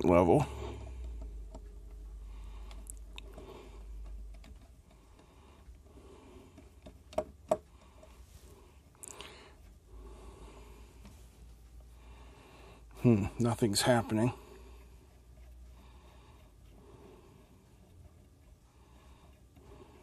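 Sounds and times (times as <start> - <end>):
small screwdriver scratching: 14.8 - 19.7.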